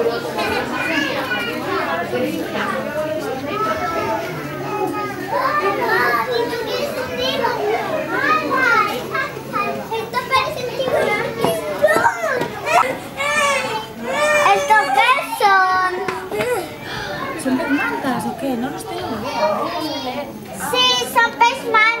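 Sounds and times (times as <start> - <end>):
children chattering and calling out: 0.0 - 22.0.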